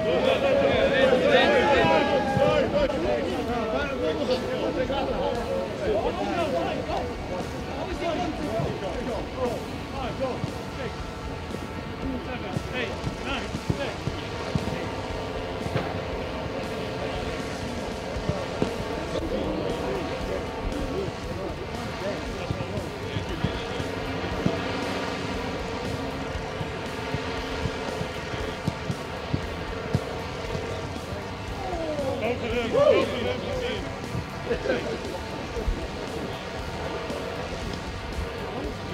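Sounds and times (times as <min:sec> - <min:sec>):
distant players calling out: 0:00.0 - 0:25.1, 0:25.9 - 0:38.9
steady droning tone: 0:00.0 - 0:38.9
football kicks: 0:27.6 - 0:30.8.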